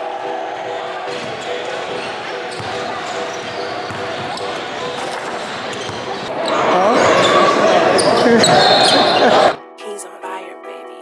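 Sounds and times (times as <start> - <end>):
voices chattering in large hall: 0.0 - 9.7
basketballs bouncing on hardwood: 1.1 - 6.3.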